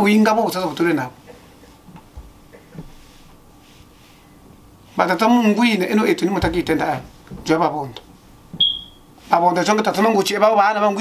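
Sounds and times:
high-pitched electronic beep: 8.6 - 9.0.

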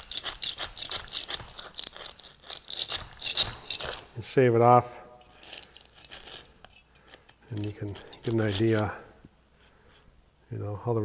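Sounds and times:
razor blade scraping concrete: 0.0 - 4.2, 5.2 - 9.0.

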